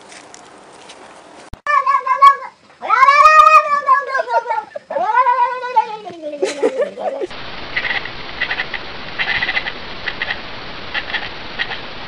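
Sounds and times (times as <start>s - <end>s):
cat yowling: 1.6s - 6.1s.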